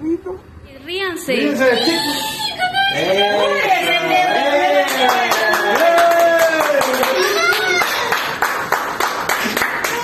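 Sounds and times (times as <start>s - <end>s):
excited voices crying out: 1.7s - 8.2s
hand clapping: 4.9s - 10.0s.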